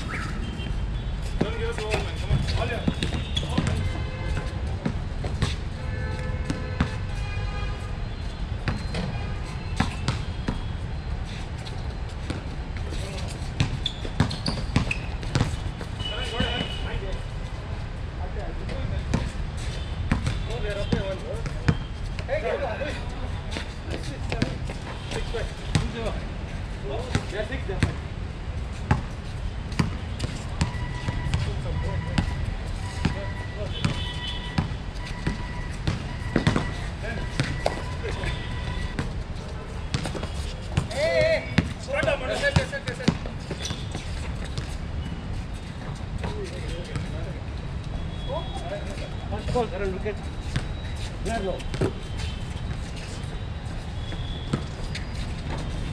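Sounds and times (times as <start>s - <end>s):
basketball bouncing on hard court: 1.4s - 5.6s, 13.6s - 16.8s, 20.1s - 21.9s, 29.7s - 31.5s, 33.0s - 39.2s, 39.9s - 44.8s.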